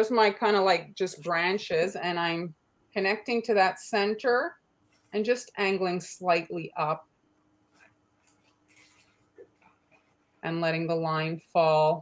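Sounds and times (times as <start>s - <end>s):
soft rustles: 4.8s - 5.2s, 7.3s - 10.4s.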